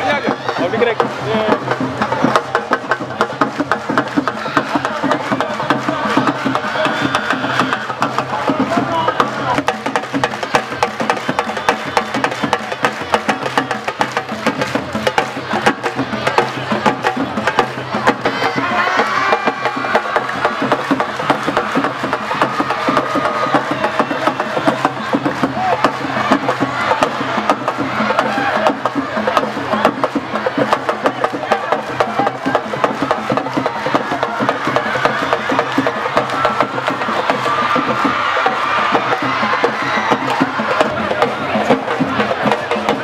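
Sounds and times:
fast dense drumming: 0.0 - 43.0
voices singing: 0.0 - 43.0.

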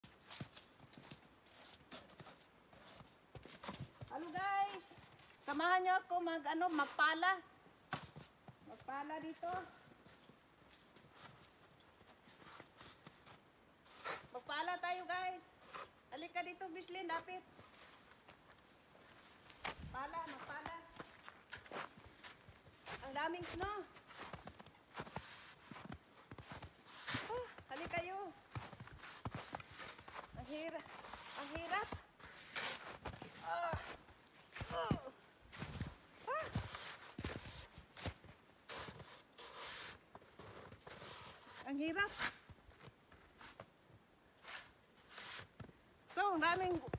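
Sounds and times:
feet crunching in snow: 0.0 - 4.6, 17.5 - 43.7, 44.4 - 46.9
snow shovel scraping snow: 30.9 - 33.4, 38.7 - 40.0, 40.8 - 42.4, 44.4 - 45.5.

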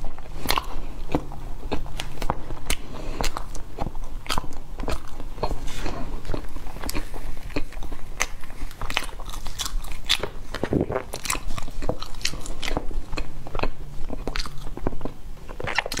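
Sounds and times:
chewing and crunching: 0.0 - 16.0.

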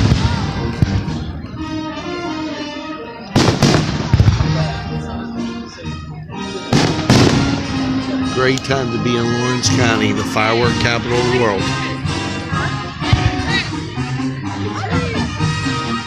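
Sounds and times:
fireworks booming: 0.0 - 1.3, 3.4 - 4.9, 6.7 - 8.6
music with held notes: 0.0 - 16.0.

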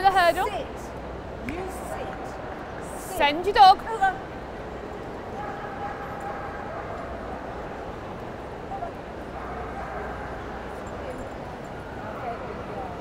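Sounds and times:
murmur of a large hall: 0.0 - 13.0.

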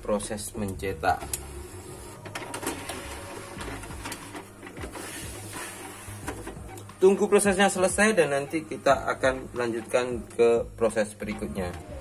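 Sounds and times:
inkjet printer humming: 0.1 - 12.0
printer clicks: 2.1 - 12.0.

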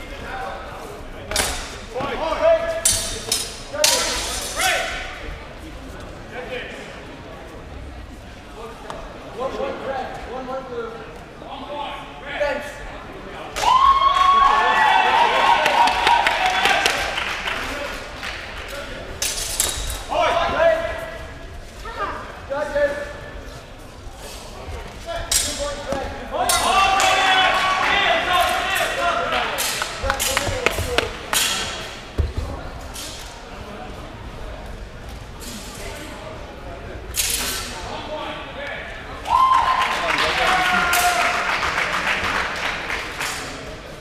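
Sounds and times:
applause echoing in hall: 14.1 - 18.7, 39.4 - 43.7.

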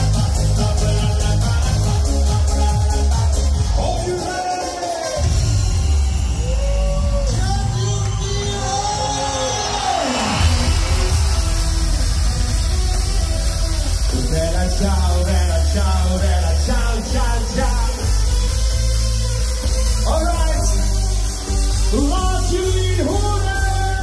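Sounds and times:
man singing into microphone: 0.0 - 3.1
pop backing track with heavy bass: 0.0 - 24.0.

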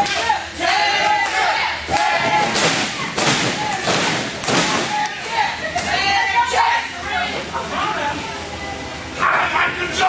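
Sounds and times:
people's voices: 0.0 - 10.0
loud thuds: 2.0 - 5.0.

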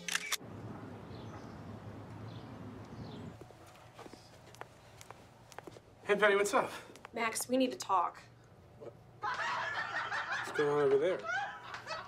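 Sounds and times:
low outdoor hum: 0.0 - 12.0.

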